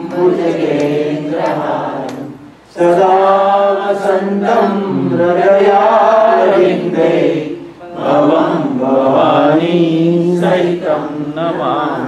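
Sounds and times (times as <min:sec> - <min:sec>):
voices chanting a prayer: 0:00.0 - 0:12.0.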